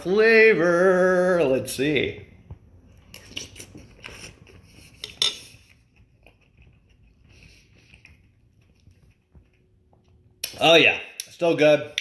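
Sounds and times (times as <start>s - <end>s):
faint chewing: 2.9s - 10.4s.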